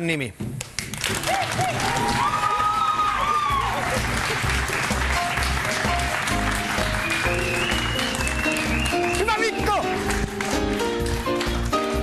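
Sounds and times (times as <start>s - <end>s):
audience applause: 0.8s - 12.0s
upbeat synthesizer music: 4.0s - 12.0s.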